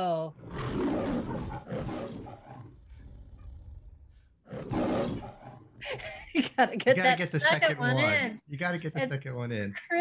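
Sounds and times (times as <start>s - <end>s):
lion roaring: 0.4s - 5.8s.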